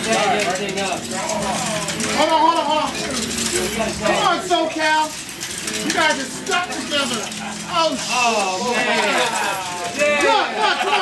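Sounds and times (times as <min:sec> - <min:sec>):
excited voices chattering: 0:00.0 - 0:11.0.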